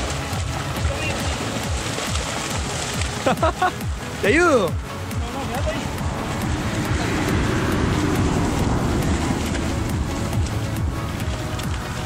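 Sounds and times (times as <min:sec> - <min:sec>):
fish thrashing in net: 0:00.0 - 0:03.5
background music with beat: 0:00.0 - 0:12.0
water splashing and churning: 0:00.0 - 0:12.0.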